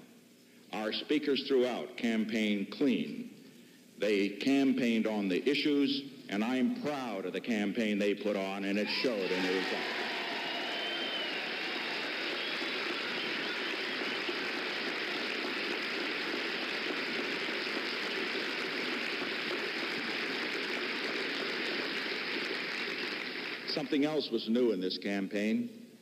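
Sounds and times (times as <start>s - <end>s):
faint cheering: 8.8s - 23.3s
crowd applauding: 8.8s - 24.0s.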